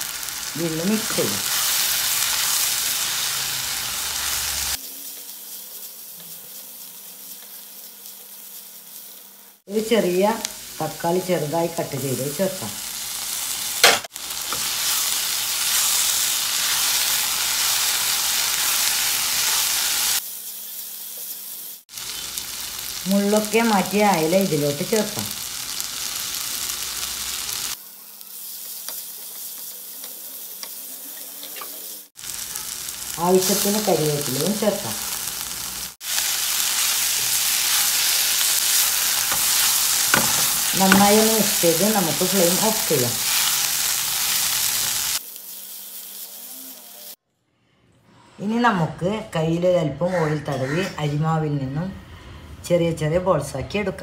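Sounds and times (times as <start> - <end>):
onions sizzling in a frying pan: 0.0 - 47.2.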